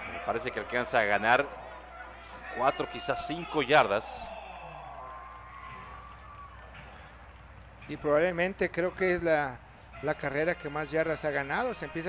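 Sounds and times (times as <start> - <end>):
faint stadium crowd noise: 0.0 - 12.0.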